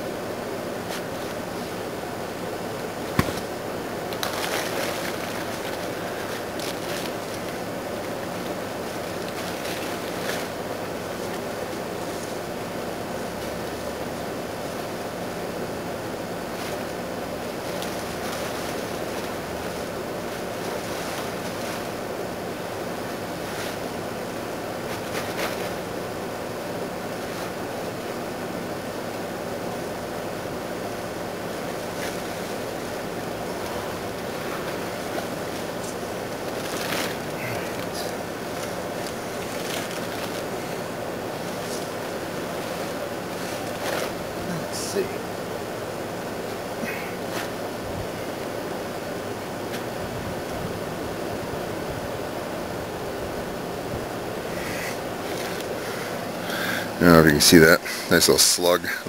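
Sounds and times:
faint clicks and rustles: 2.6 - 28.2, 30.8 - 48.4, 54.5 - 57.0.

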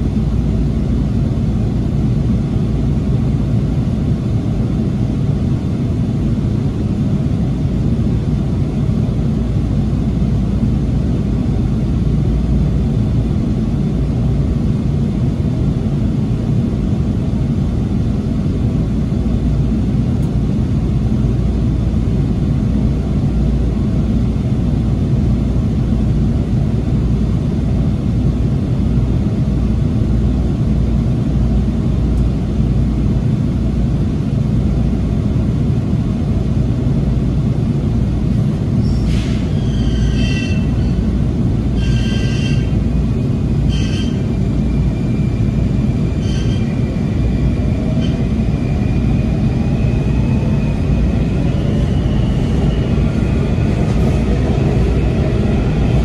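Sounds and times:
train car low rumble: 0.0 - 56.0.

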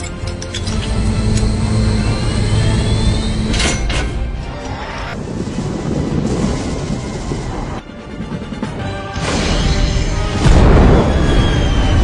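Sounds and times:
large vehicle engines rumbling: 0.0 - 7.8.

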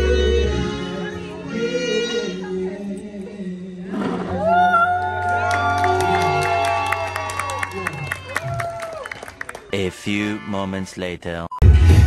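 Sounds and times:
crowd cheering: 4.3 - 10.4
backing music: 9.7 - 11.0, 11.6 - 12.0.

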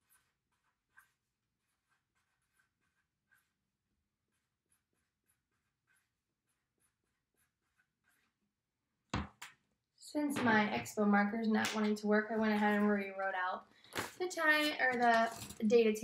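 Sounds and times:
marker writing on paper: 0.0 - 9.3.

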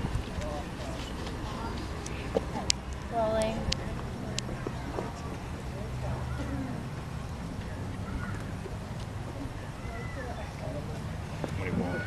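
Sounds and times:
faint voices talking: 0.0 - 12.0
traffic rumble: 0.0 - 12.0.

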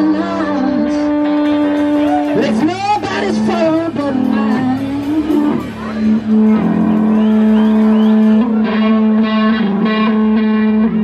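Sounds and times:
electric guitar: 0.0 - 11.0
harmonica long note: 0.0 - 11.0
upright bass: 0.0 - 11.0.

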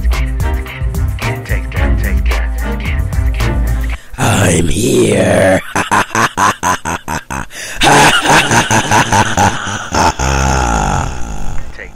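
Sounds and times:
wordless wavering vocal: 0.2 - 6.4, 9.7 - 11.9.

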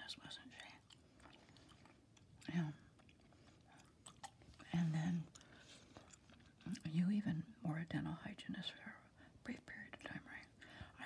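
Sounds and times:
woman whispering: 0.0 - 0.9, 2.4 - 2.9, 4.6 - 5.4, 6.8 - 11.0.

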